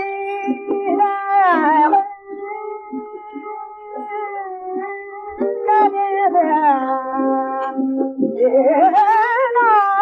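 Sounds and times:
harmonium: 0.0 - 10.0.

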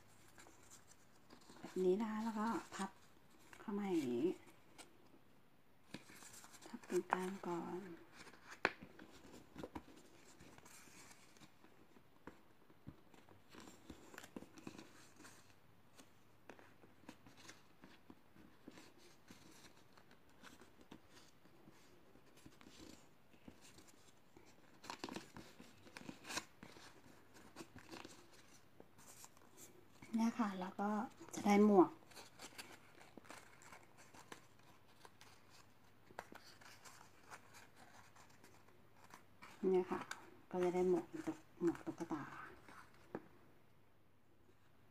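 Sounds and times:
woman speaking: 1.7 - 3.0, 3.6 - 4.4, 6.7 - 8.0, 30.0 - 32.0, 39.6 - 42.6
cardboard rustling: 5.8 - 43.3.

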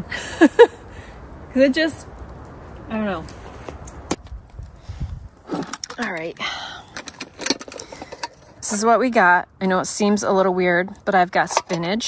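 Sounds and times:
metal tin clicks: 11.3 - 12.0.

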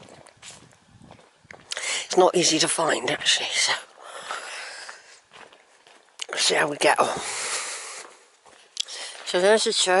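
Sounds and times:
footsteps scuffing on tarmac: 0.0 - 1.7, 4.2 - 6.2, 8.0 - 10.0.

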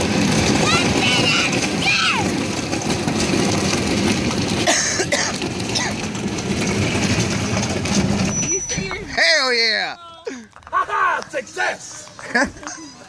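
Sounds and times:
plastic pool scraping over asphalt: 0.0 - 9.5
motor vehicle running: 0.0 - 13.0.

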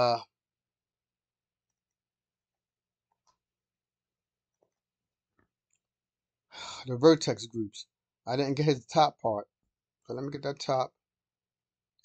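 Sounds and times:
man saying uh: 0.0 - 0.2.

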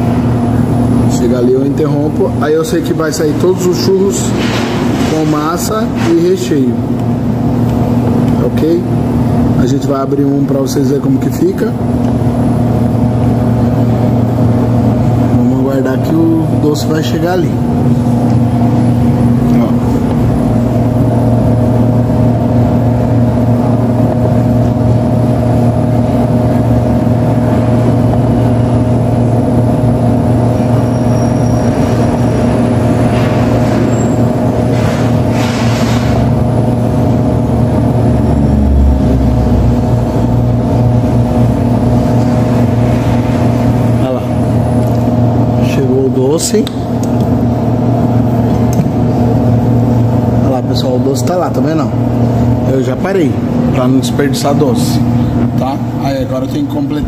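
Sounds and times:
machine motor humming: 0.0 - 57.0.

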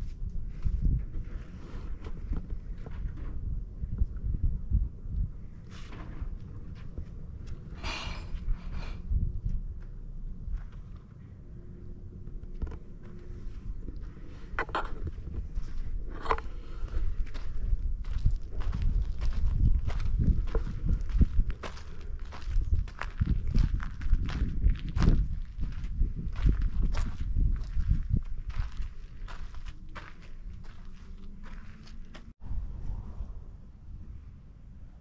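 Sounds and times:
footsteps on sandy dirt path: 12.2 - 32.4.

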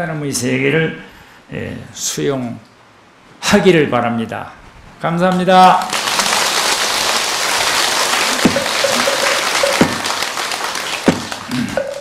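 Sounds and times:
audience applauding: 5.8 - 12.0.

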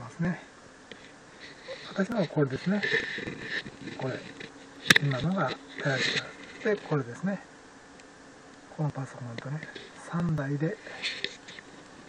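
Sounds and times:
faint steady hiss: 0.0 - 12.0
man murmuring: 1.6 - 3.3.

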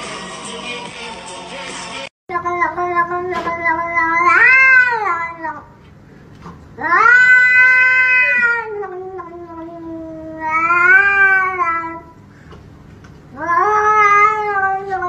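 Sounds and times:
cat yowling: 2.5 - 5.6, 6.8 - 12.1, 13.3 - 15.0.

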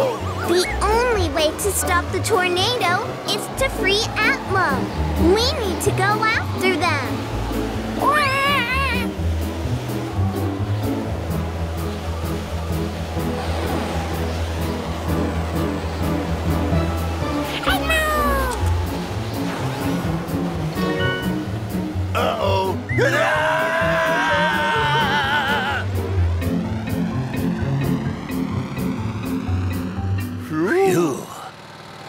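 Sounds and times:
long wavering wail: 22.9 - 26.0.

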